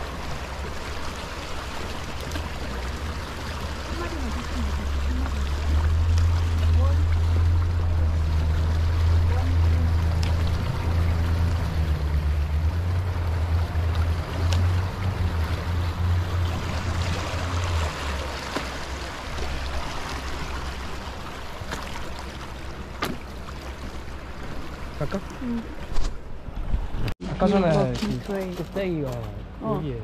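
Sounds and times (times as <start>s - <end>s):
wind rumbling on microphone: 25.8s - 27.2s.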